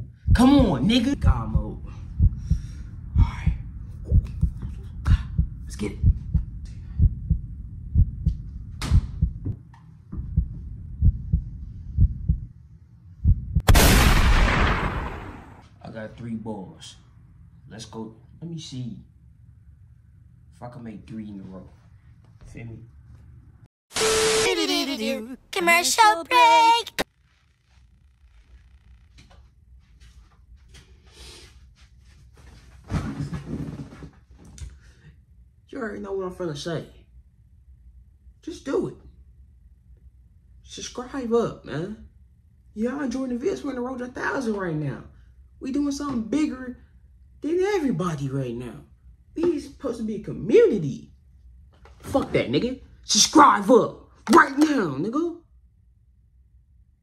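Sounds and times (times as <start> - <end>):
rhythmic low thuds: 0.0 - 12.6, 13.2 - 13.7.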